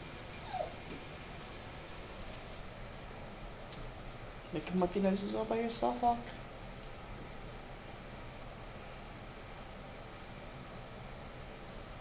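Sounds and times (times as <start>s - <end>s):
faint room hiss: 0.0s - 12.0s
puppy whimpering: 0.4s - 0.8s.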